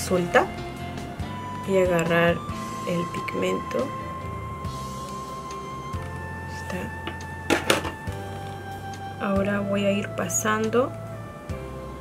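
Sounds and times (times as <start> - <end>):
music with held notes and bass: 0.0 - 12.0.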